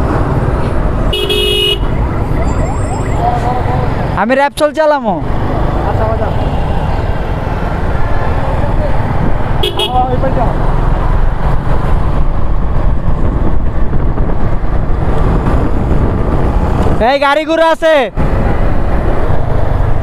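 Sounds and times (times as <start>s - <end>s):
vehicle horn toot: 1.1s - 1.8s, 9.6s - 10.0s
wind rush on microphone: 6.7s - 20.0s.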